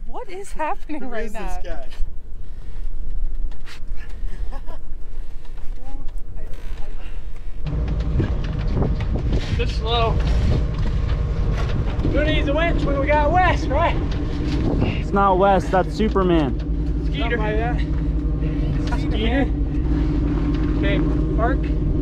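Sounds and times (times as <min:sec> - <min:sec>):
wind buffeting microphone: 0:07.5 - 0:22.0.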